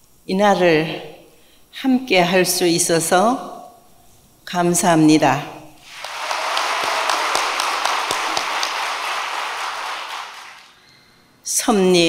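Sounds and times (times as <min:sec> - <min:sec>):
audience applause: 0:05.8 - 0:10.8.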